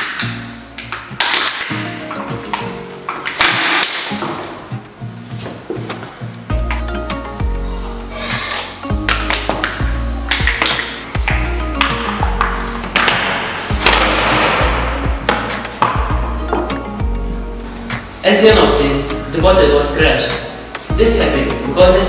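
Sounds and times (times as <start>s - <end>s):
background music with bass line: 0.0s - 22.0s.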